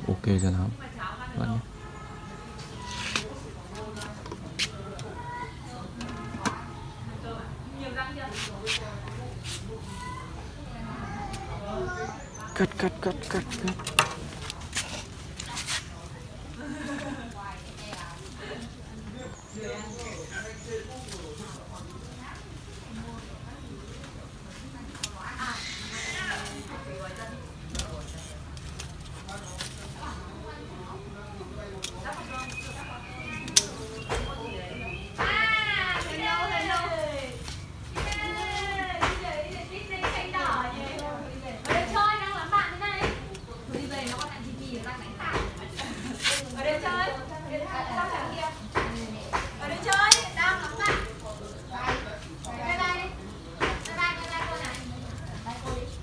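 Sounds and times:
leaves rustling: 0.8 - 56.0
pruning shears snipping twigs: 31.8 - 34.4, 48.7 - 55.8.

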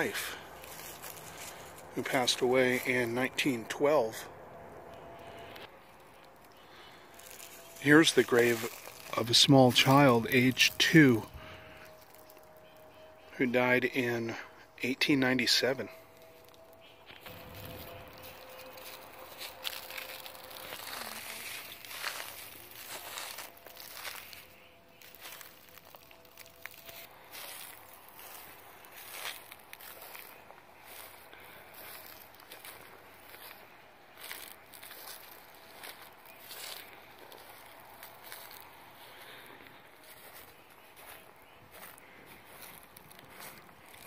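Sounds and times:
footsteps crunching dry leaves: 0.0 - 13.3, 15.4 - 44.0.

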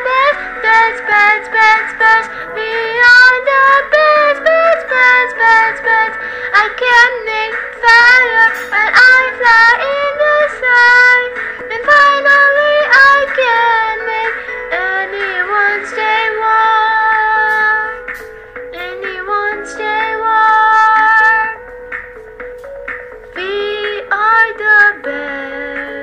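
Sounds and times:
high-pitched singing voice: 0.0 - 18.0, 18.7 - 21.6, 23.4 - 26.0
backing music: 0.0 - 26.0.

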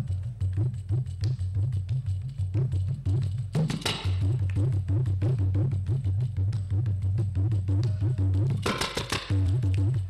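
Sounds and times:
percussion sharp strokes: 0.0 - 10.0.

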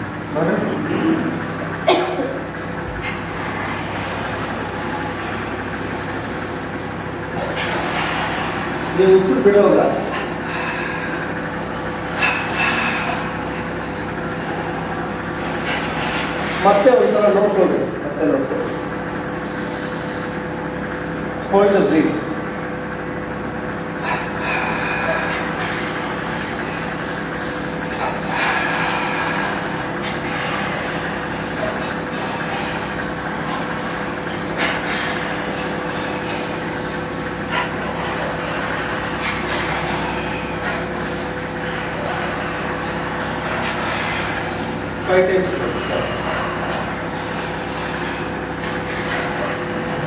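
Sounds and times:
electric fans humming: 0.0 - 50.0.

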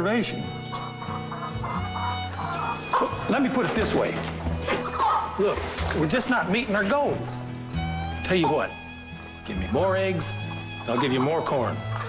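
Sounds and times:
background music of held notes: 0.0 - 12.0
chickens clucking: 0.6 - 8.9, 9.7 - 12.0.

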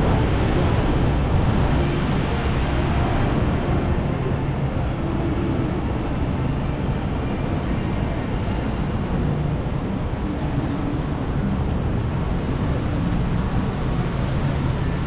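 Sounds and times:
road traffic rumble: 0.0 - 15.0.

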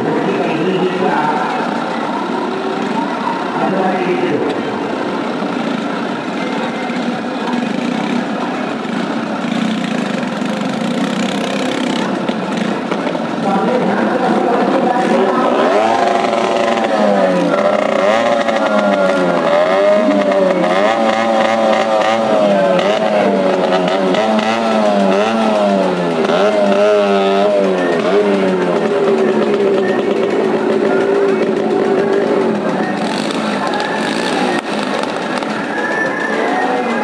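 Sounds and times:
vehicle engine revving: 0.0 - 37.0.

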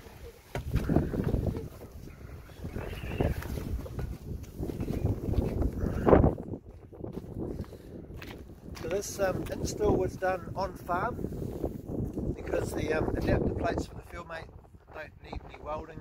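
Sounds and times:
microphone rubbing on jacket: 0.0 - 6.5.

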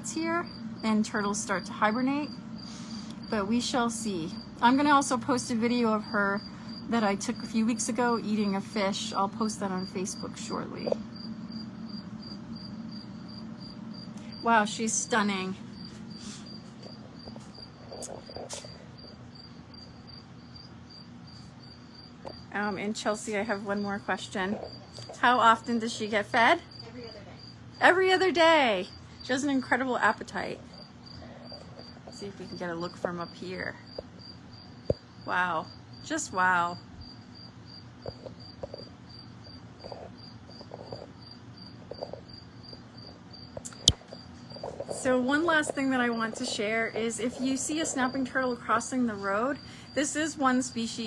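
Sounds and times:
cricket chirping: 0.0 - 51.0
low steady hum: 0.0 - 51.0.

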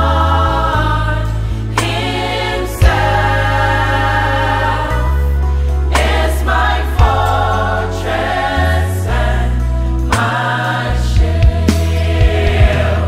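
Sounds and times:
deep held bass notes: 0.0 - 13.0
gospel choir singing: 0.0 - 13.0
keyboard accompaniment: 0.0 - 13.0.

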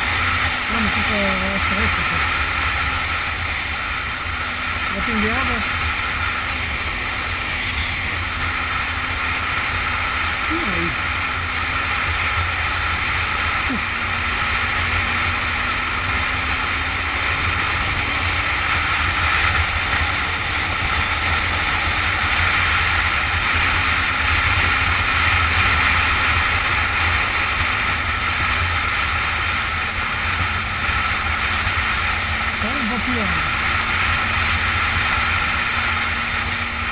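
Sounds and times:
motorcycle engine running: 0.0 - 36.9.

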